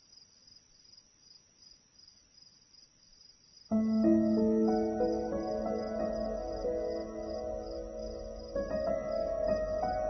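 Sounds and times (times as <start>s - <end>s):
faint insect chirping trill: 0.0s - 10.0s.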